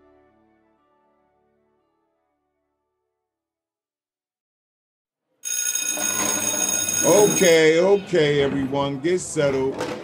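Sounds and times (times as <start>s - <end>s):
school bell ringing: 5.4s - 7.9s.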